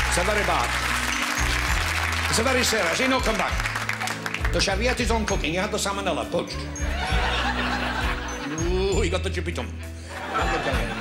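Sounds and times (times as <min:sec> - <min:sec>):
band backing music: 0:00.0 - 0:11.0
audience laughing: 0:06.8 - 0:08.8, 0:10.0 - 0:11.0.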